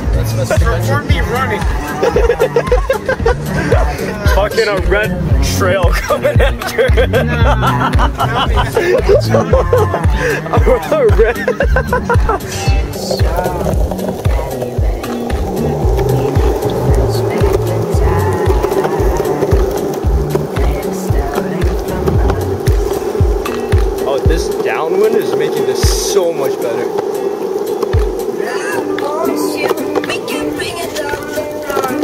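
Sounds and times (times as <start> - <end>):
music playing: 0.0 - 32.0
skateboard wheels rolling on asphalt: 0.0 - 32.0.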